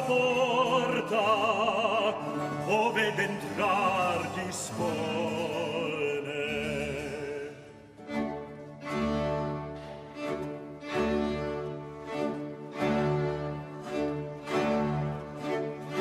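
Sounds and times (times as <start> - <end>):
string ensemble with continuo: 0.0 - 16.0.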